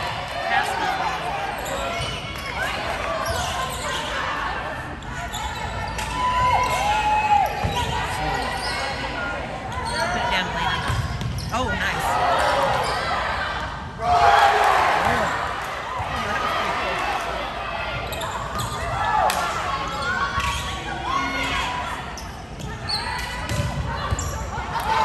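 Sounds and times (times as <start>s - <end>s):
sneaker squeaks on floor: 9.7s - 11.7s, 18.0s - 19.0s, 22.2s - 24.5s.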